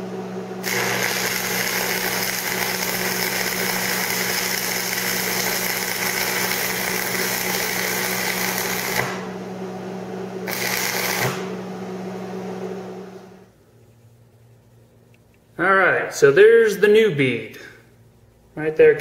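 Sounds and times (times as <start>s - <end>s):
welder hum: 0.0s - 13.6s
welding arc crackling and hissing: 0.6s - 9.3s, 10.4s - 11.5s.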